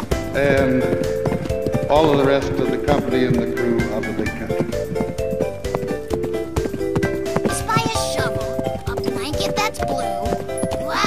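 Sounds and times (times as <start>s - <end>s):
clip-clop hoofbeats: 0.0s - 11.0s
cartoon tune: 7.5s - 11.0s.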